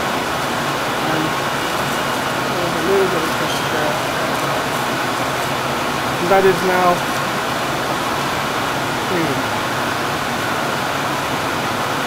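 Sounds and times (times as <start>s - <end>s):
ventilation and equipment fans rushing: 0.0s - 12.0s.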